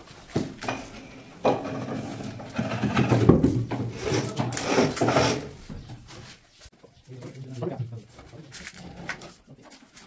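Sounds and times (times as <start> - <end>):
board scraping and rubbing: 1.6 - 5.7.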